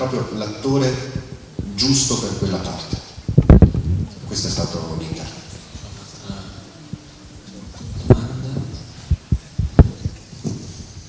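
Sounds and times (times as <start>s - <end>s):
microphone handling thumps: 1.0s - 11.0s.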